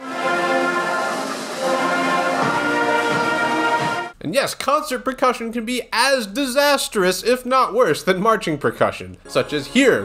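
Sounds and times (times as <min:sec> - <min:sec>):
concert band playing sustained chords: 0:00.0 - 0:04.2.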